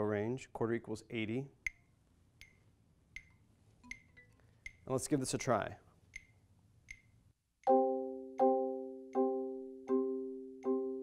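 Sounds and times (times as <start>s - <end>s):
metronome clicking: 1.6s - 5.0s, 6.1s - 11.0s.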